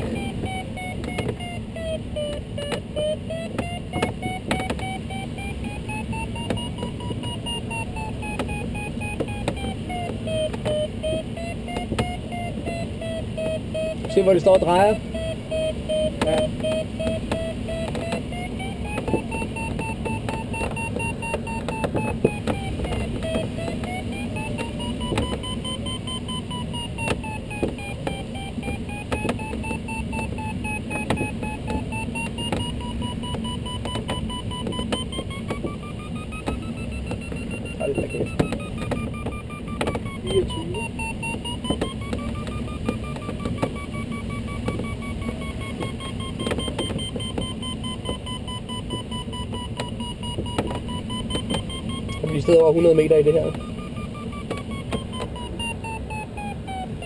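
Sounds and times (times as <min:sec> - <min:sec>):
variometer tone rising and falling: 0:00.0 - 0:57.0.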